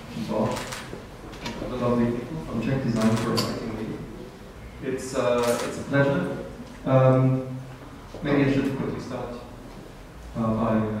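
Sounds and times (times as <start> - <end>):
man talking into a microphone: 1.6 - 4.2, 4.8 - 7.6, 8.2 - 9.6, 10.4 - 11.0.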